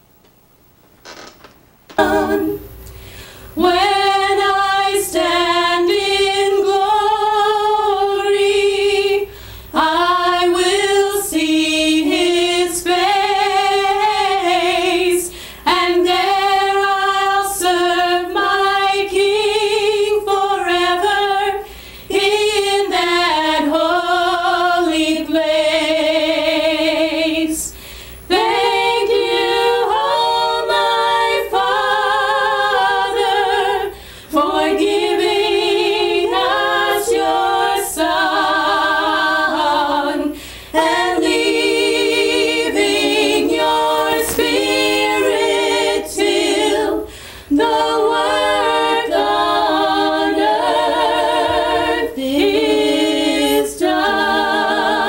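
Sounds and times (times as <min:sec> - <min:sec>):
women singing gospel in harmony: 0:03.3 - 0:55.0.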